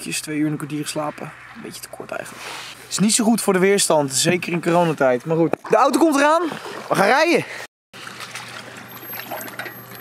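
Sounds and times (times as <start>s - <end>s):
shallow water trickling and lapping: 4.3s - 10.0s.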